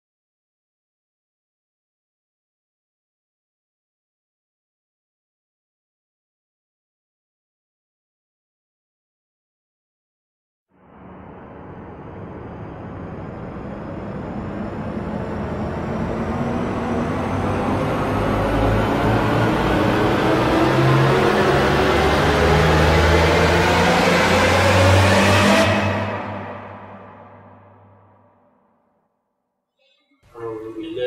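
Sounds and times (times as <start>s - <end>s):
rising swell sound effect: 10.8s - 28.5s.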